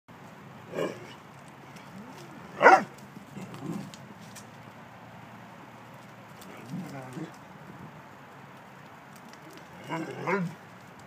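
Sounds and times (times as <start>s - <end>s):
dog barking: 2.6s - 2.9s.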